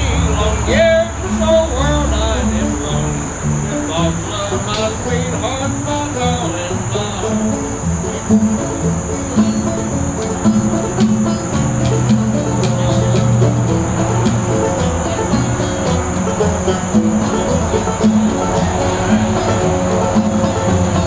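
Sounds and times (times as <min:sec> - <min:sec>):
crickets chirping: 0:00.0 - 0:21.0
plucked acoustic guitar: 0:00.0 - 0:21.0
upright bass notes: 0:00.0 - 0:21.0.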